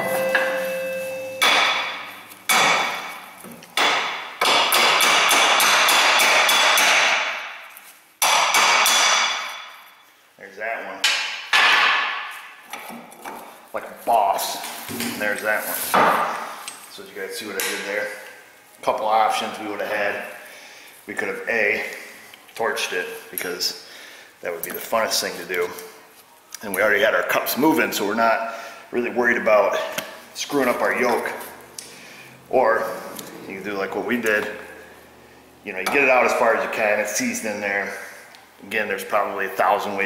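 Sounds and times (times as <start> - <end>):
hammer ringing on steel: 0.0 - 2.8.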